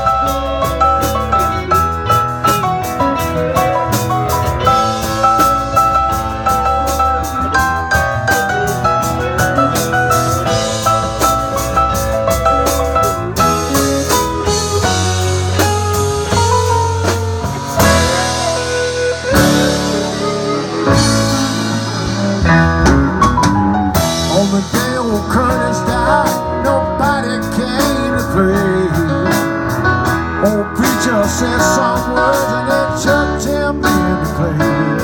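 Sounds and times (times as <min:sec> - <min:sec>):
bass: 0:00.0 - 0:35.0
drum kit with cymbals: 0:00.0 - 0:35.0
electric guitar lead: 0:00.0 - 0:35.0.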